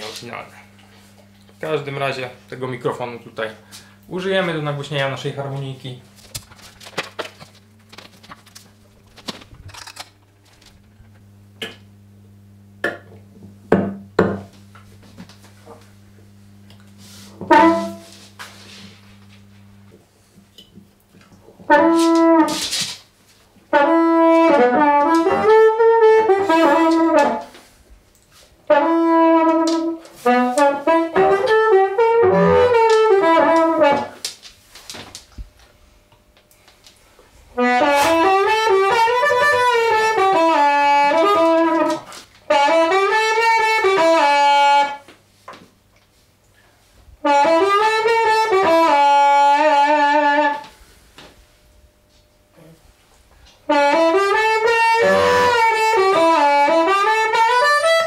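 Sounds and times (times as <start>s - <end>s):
distorted amplified harmonica: 28.7s - 34.1s, 37.6s - 45.1s, 53.7s - 58.0s.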